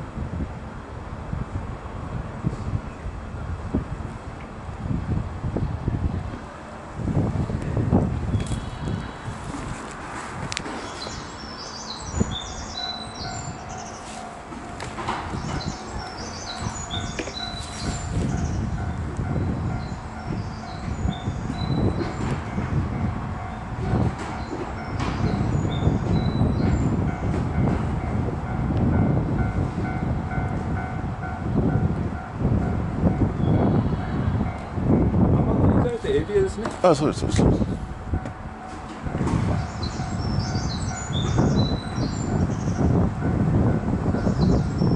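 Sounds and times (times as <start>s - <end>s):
wind rumble on microphone: 0.0s - 44.9s.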